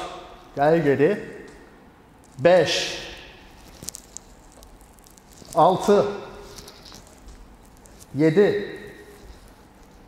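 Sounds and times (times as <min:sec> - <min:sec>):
faint rustling on yoga mats: 0:03.5 - 0:08.2, 0:08.9 - 0:10.0.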